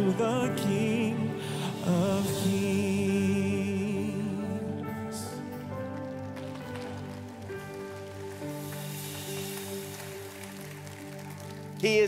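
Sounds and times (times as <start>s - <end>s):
man's voice: 0.0s - 5.7s, 11.8s - 12.0s.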